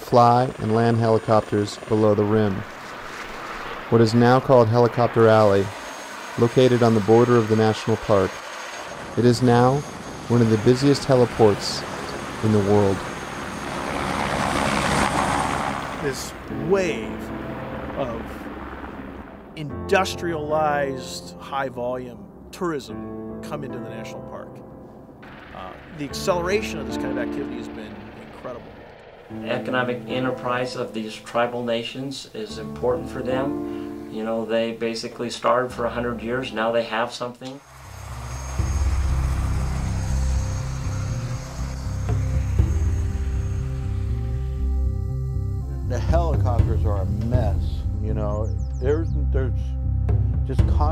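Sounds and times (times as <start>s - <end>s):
helicopter rotor and engine: 0.0s - 19.6s, 25.0s - 31.8s, 37.5s - 47.8s
faint music: 25.6s - 37.4s, 38.0s - 49.8s.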